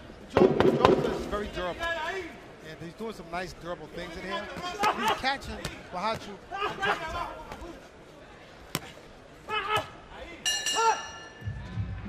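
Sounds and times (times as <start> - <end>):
metallic bell ringing: 10.4 - 11.5.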